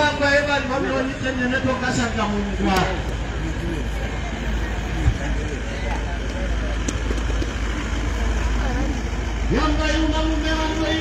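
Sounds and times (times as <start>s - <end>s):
indistinct crowd voices: 0.0s - 11.0s.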